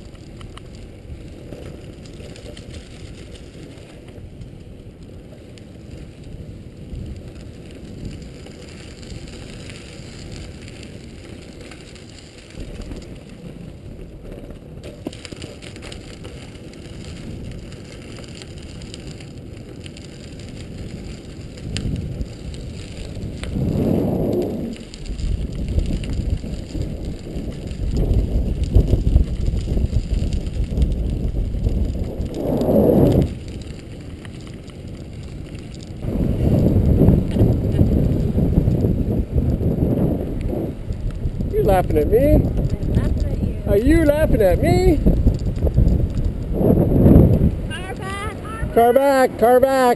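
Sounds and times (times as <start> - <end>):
bicycle tyre and frame rattle: 0.0 - 49.9.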